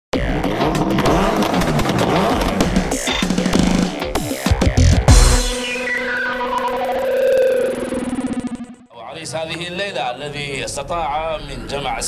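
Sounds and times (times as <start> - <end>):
car show intro music: 0.2 - 8.9
engine revving sound effects: 0.2 - 8.9
sharp hits: 2.8 - 8.8.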